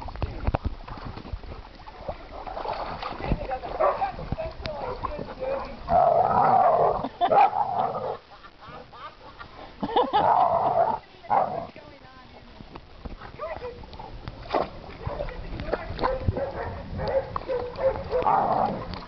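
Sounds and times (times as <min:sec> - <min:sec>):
dogs barking: 0:03.8 - 0:04.1, 0:16.0 - 0:18.8.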